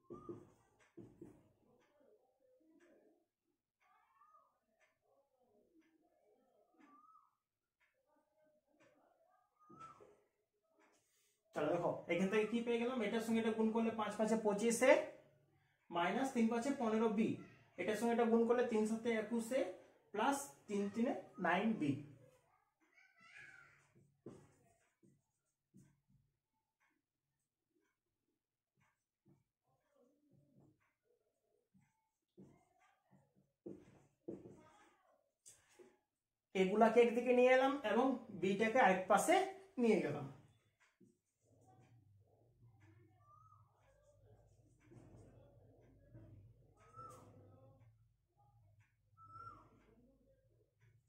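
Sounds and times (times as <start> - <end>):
whiteboard marker squeaking: 0.0 - 1.3, 9.6 - 10.2, 43.1 - 45.4, 46.7 - 47.5, 49.2 - 50.0
marker squeaking on whiteboard: 0.0 - 1.4, 6.6 - 7.4, 8.8 - 10.2, 22.8 - 25.8, 40.4 - 48.0, 48.9 - 50.0.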